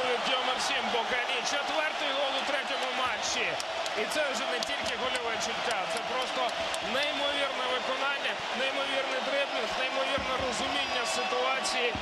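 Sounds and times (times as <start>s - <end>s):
man commentating on football: 0.0s - 12.0s.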